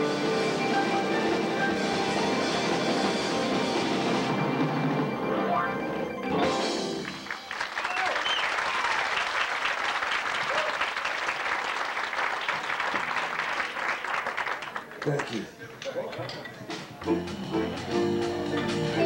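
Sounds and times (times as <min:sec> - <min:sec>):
music: 0:00.0 - 0:07.7, 0:16.7 - 0:19.0
audience applauding: 0:06.8 - 0:15.5.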